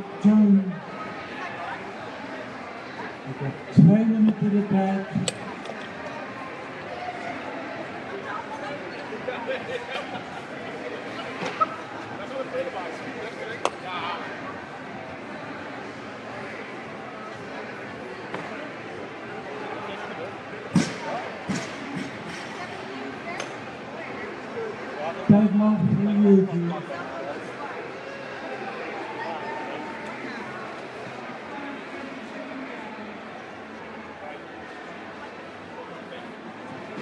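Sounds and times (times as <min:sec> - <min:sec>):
murmur of voices: 0:00.0 - 0:37.0.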